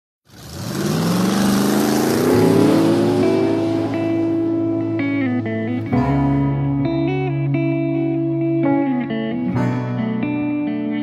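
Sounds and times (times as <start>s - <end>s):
motorcycle engine accelerating: 0.3s - 6.8s
held guitar chord: 2.2s - 11.0s.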